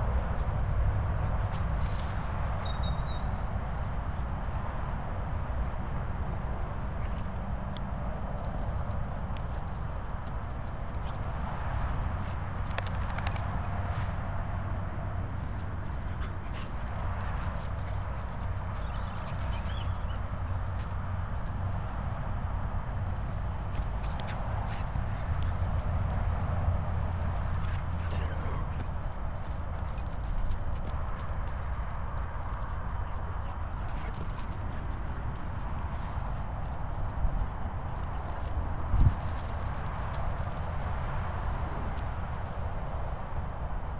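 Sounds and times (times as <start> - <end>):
wind rumbling on microphone: 0.0 - 43.9
dogs scuffling: 8.4 - 14.1, 15.2 - 21.8, 23.2 - 42.1.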